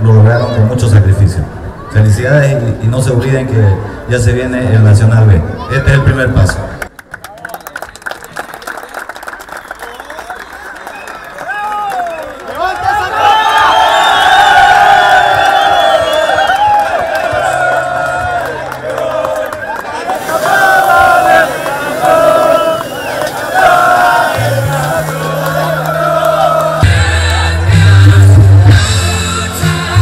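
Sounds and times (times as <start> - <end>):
group yelling: 11.5 - 27.6
group chanting: 20.1 - 28.4
music with low bass: 24.5 - 30.0.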